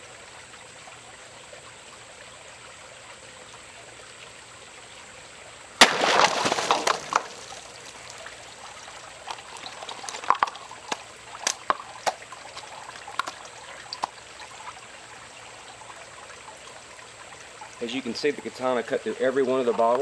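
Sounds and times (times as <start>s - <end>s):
water trickling and dripping: 0.0s - 20.0s.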